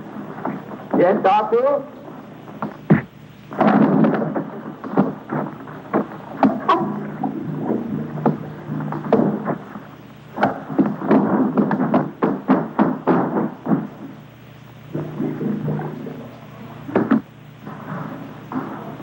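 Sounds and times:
continuous rumble: 0.0 - 19.0.

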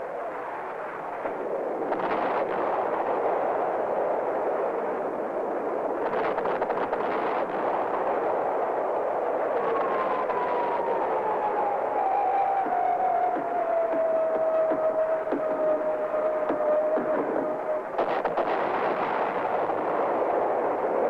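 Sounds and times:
jet engine roar: 0.0 - 21.0
jet engine whine falling in pitch: 9.4 - 18.6.

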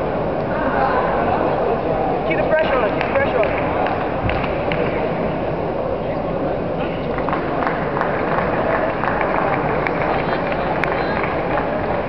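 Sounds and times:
distant overlapping voices: 0.0 - 12.0.

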